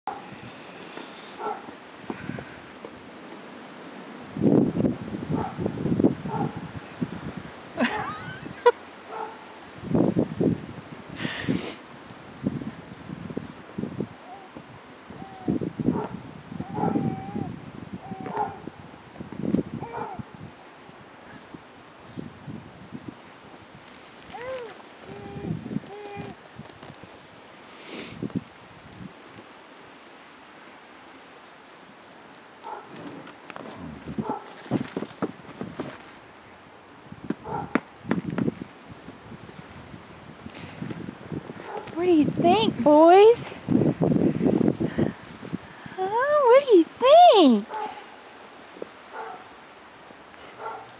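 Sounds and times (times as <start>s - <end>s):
rustling in snow: 20.4s - 37.3s
baby vocalizing: 24.4s - 26.4s.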